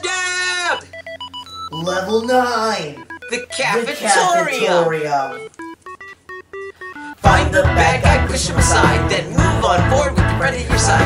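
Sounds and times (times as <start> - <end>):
retro video game beeps: 0.7 - 7.3
person talking: 1.7 - 5.5.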